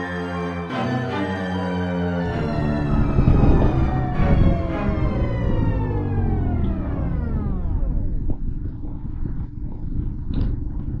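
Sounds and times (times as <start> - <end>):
wind rumble on microphone: 2.2 - 11.0.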